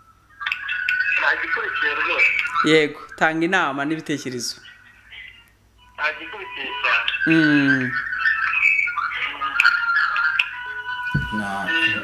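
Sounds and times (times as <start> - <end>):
garbled telephone voice: 0.5 - 12.0
high whistling tones: 4.6 - 12.0.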